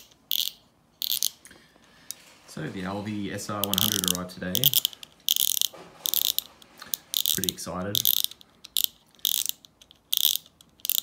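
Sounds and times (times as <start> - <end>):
fishing reel ratcheting clicks: 0.0 - 1.4, 3.6 - 11.0.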